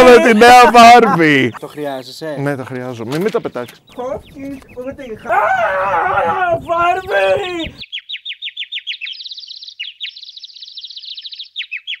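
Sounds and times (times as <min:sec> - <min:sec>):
bird chirping: 0:01.3 - 0:05.3, 0:06.6 - 0:12.0.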